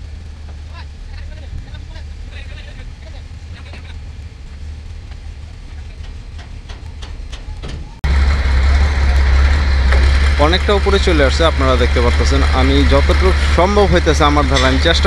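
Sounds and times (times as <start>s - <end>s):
engine rumble: 0.0s - 15.0s.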